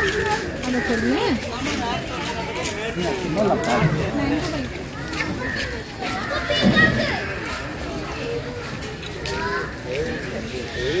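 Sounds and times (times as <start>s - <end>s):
children's voices: 0.0s - 11.0s
people talking at once: 0.0s - 11.0s.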